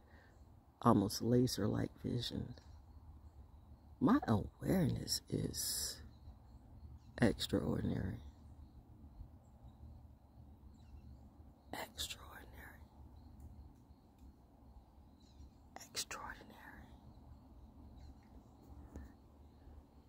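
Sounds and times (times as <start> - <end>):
woman whispering breathily: 11.8 - 12.9, 15.8 - 17.0.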